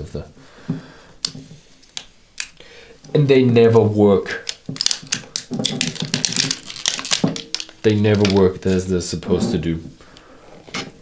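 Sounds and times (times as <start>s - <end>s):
fingers tearing bottle seal: 4.4s - 8.4s.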